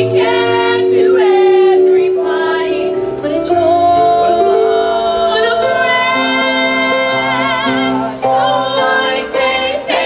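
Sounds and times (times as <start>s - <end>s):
choir singing in harmony: 0.0s - 10.0s.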